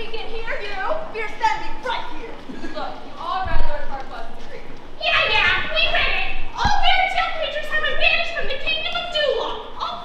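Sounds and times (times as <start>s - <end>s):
young actors speaking and calling out: 0.0s - 10.0s
thump: 6.6s - 7.0s.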